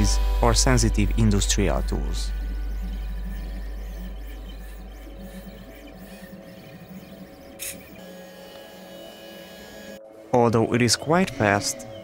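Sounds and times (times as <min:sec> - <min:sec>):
stepper motors whirring: 0:00.0 - 0:10.0
background music: 0:00.0 - 0:12.0.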